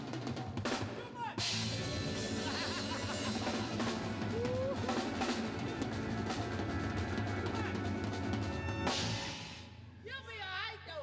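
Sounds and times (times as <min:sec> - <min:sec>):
drum kit: 0:00.0 - 0:09.7
live soul band playing: 0:01.4 - 0:09.6.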